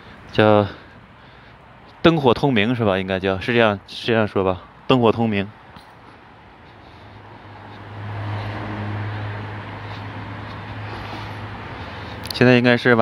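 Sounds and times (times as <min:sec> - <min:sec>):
vehicle passing on road: 0:05.2 - 0:13.0.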